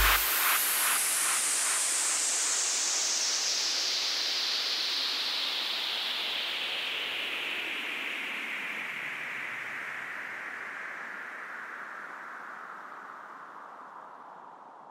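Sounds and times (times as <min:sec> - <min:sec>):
falling white-noise sweep: 0:00.0 - 0:01.0.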